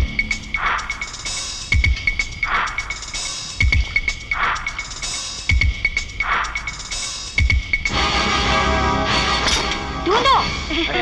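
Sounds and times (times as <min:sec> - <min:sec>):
film score with sustained tones: 0:00.0 - 0:11.0.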